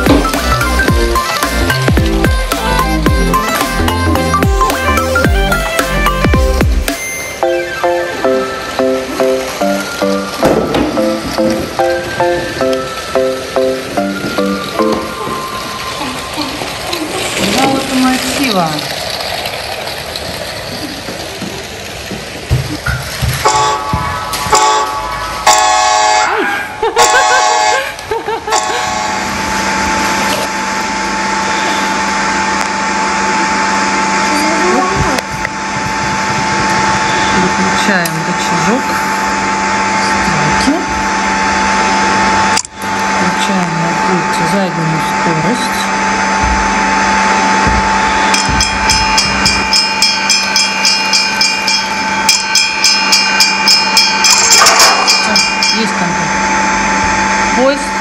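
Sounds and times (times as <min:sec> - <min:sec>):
toy train motor humming: 0:12.4 - 0:22.5, 0:27.1 - 0:58.0
loud chord-like blasts: 0:28.5 - 0:58.0.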